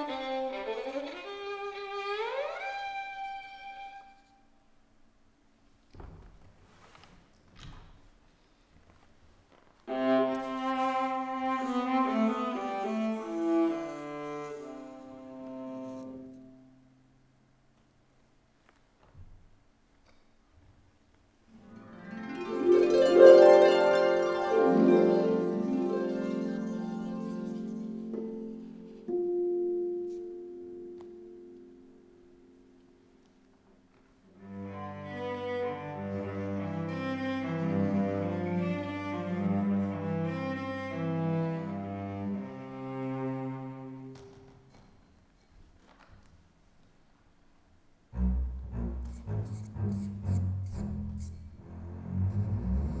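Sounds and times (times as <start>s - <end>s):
bowed viola sustained notes: 9.9s - 16.8s, 34.4s - 44.2s, 48.2s - 53.0s.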